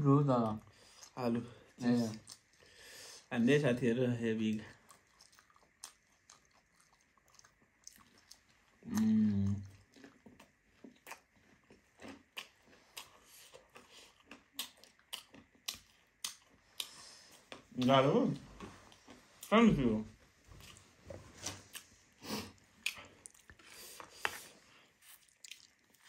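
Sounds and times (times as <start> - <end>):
crunchy snack being chewed: 4.7 - 17.6, 25.0 - 26.0.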